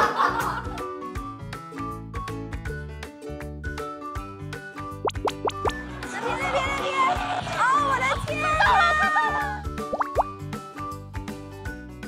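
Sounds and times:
upbeat background music: 0:00.0 - 0:12.0
rising bloop sound effects: 0:05.1 - 0:05.8, 0:09.9 - 0:10.3.

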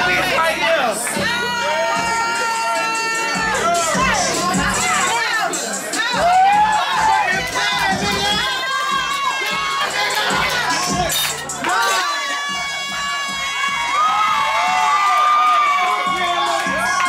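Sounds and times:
club music with thumping bass: 0:00.0 - 0:17.0
people screaming and cheering: 0:00.0 - 0:17.0.

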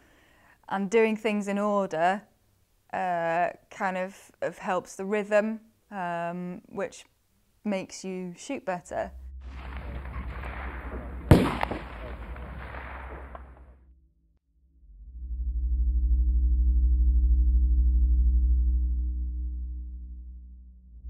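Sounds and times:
rifle shot: 0:09.4 - 0:13.8
ambient drone music: 0:14.8 - 0:21.0.

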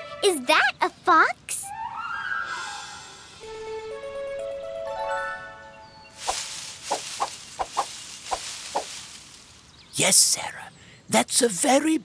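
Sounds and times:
hissing rustle: 0:06.2 - 0:10.0.

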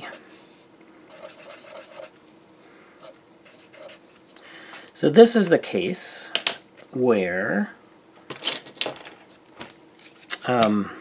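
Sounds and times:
felt-tip marker scratching on paper: 0:01.1 - 0:02.1.

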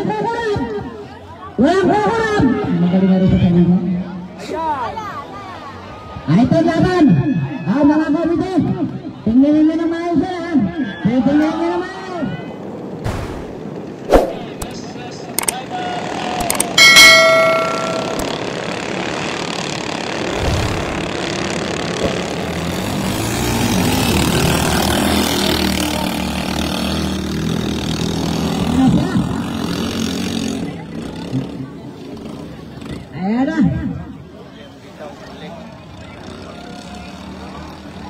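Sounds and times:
motorboats racing: 0:00.0 - 0:38.0
voices: 0:13.8 - 0:18.9, 0:24.1 - 0:38.0
clicks: 0:15.4 - 0:15.6, 0:16.4 - 0:16.8
ringing chime: 0:16.8 - 0:18.7.

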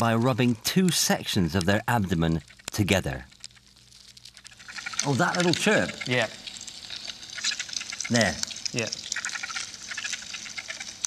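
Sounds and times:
ant stridulation chirps: 0:00.0 - 0:11.0
ants crackling clicks: 0:00.0 - 0:11.0.

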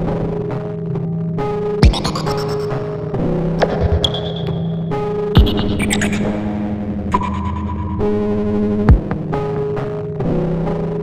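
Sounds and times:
sharp downward pitch sweep: 0:01.8 - 0:08.1
droning synthesizer tones: 0:01.8 - 0:08.6
high held tone: 0:01.9 - 0:06.6.

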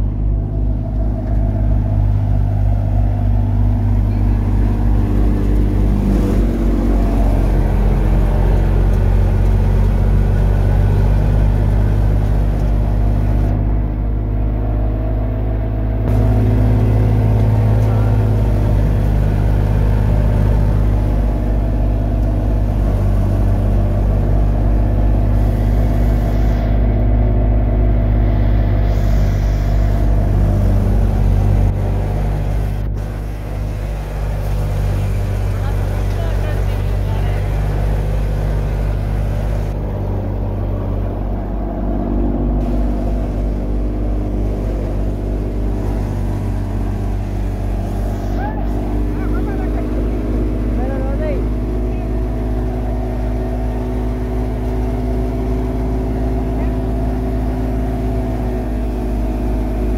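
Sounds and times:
thresher machine droning: 0:00.0 - 0:59.9.

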